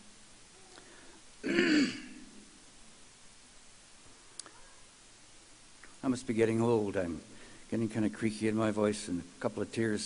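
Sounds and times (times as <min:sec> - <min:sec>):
man clearing his throat: 0:01.4 - 0:02.4.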